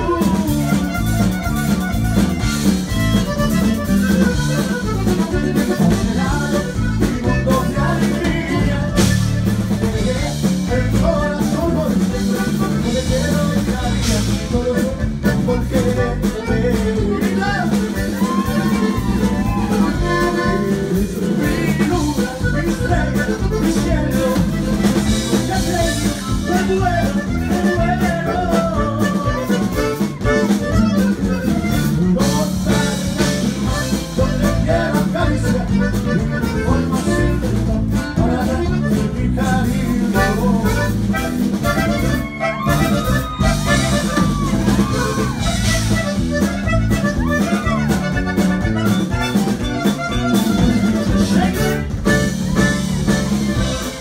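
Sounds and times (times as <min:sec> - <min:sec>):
bass guitar: 0:00.0 - 0:54.0
button accordion: 0:00.0 - 0:54.0
drums: 0:00.0 - 0:54.0
guitar: 0:00.0 - 0:54.0.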